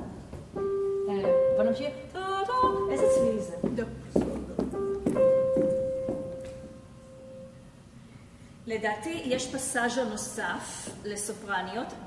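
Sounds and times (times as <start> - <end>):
grand piano notes: 0.0 - 8.3.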